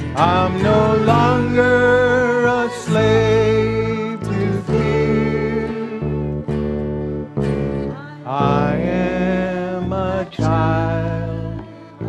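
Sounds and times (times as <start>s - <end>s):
accordion: 0.0s - 12.0s
acoustic guitar: 0.0s - 12.0s
bass: 0.0s - 12.0s
person singing sustained note: 0.5s - 6.5s.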